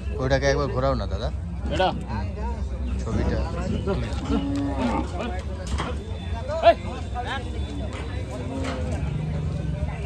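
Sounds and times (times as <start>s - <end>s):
men chattering: 0.0s - 10.0s
cow mooing: 4.2s - 5.3s.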